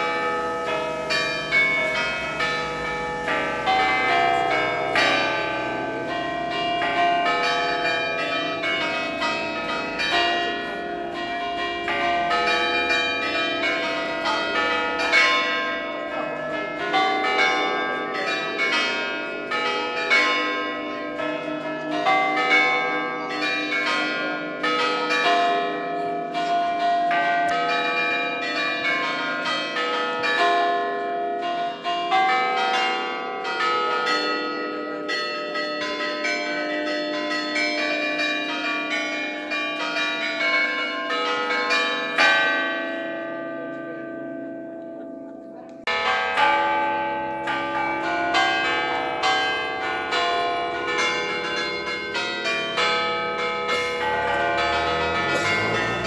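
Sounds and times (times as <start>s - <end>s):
church bells ringing: 0.0s - 56.0s.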